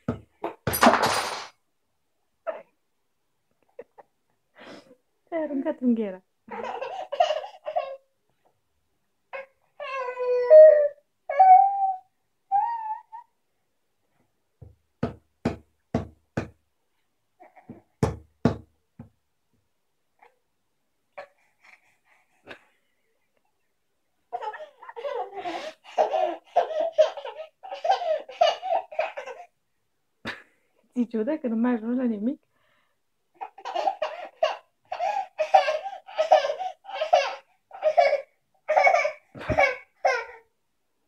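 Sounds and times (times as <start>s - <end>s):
baby laughing: 6.5s - 8.0s, 24.3s - 29.5s, 33.4s - 40.4s
baby squealing: 9.8s - 13.3s.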